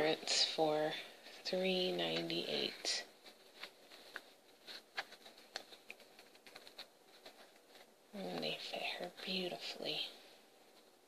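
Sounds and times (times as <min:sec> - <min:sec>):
soft clicks and rustles: 0:00.0 - 0:11.0.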